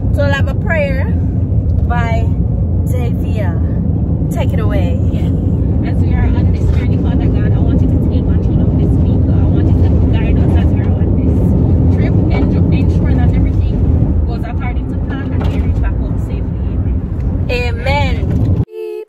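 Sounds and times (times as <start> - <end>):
car road rumble inside cabin: 0.0 - 18.7.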